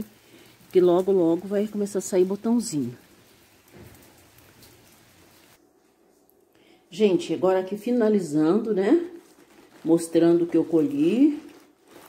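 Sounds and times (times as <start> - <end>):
light rain falling: 0.0 - 12.0.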